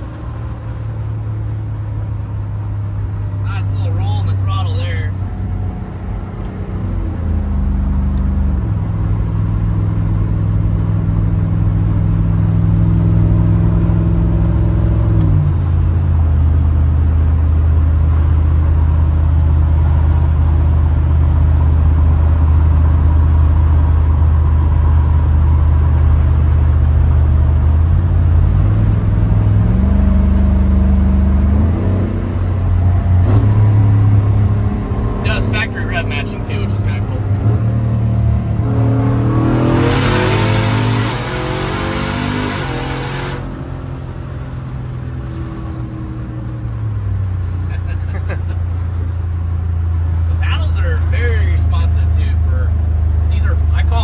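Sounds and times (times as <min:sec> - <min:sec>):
car engine at highway speed: 0:00.0 - 0:54.0.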